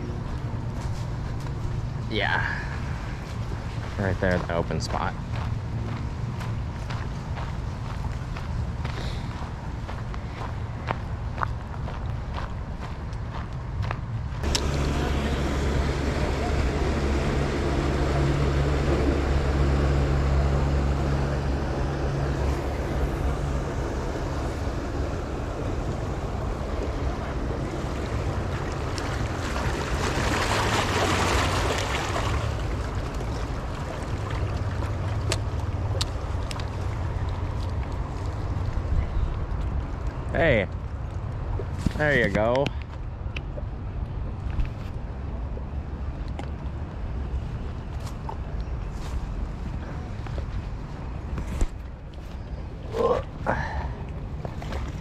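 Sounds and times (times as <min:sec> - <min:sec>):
motorboat engine droning: 0:14.4 - 0:42.5.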